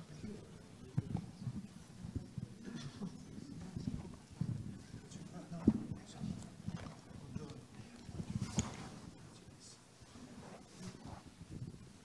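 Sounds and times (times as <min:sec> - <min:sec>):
microphone handling bumps and rustles: 0:00.8 - 0:09.2, 0:10.0 - 0:12.0.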